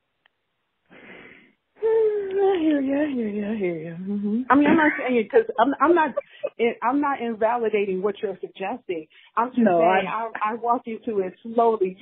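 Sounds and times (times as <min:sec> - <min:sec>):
person speaking: 0:01.8 - 0:07.2, 0:09.4 - 0:10.6.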